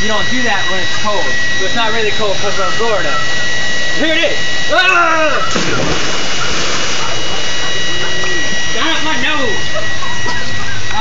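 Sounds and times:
water splashing in pool: 5.5s - 8.1s.

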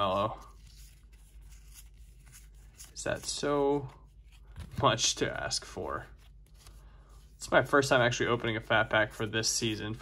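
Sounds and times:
trading cards flipped by hand: 0.5s - 6.8s.

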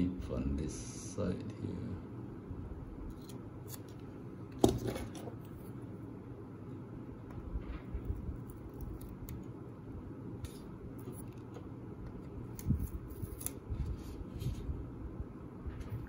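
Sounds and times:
low room hum: 0.0s - 16.0s
knife scraping tape: 12.5s - 14.0s.

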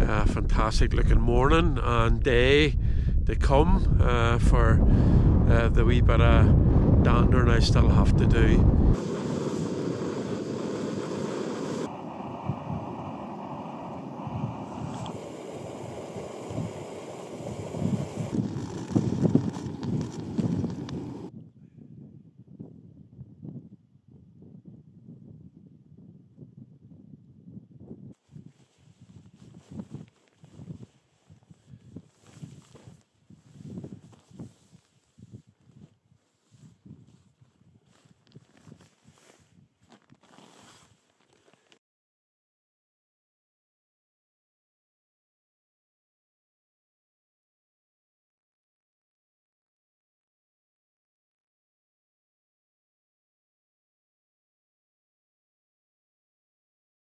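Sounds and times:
steady rushing noise: 5.0s - 21.3s
soft rustling and handling: 28.2s - 41.8s.

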